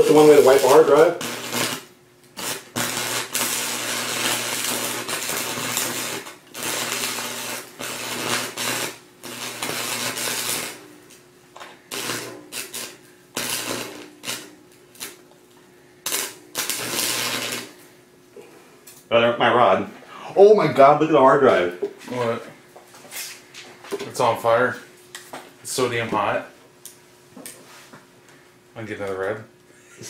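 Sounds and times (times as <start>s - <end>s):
welding arc crackling: 0.0s - 17.9s
welder electrical hum: 0.0s - 30.0s.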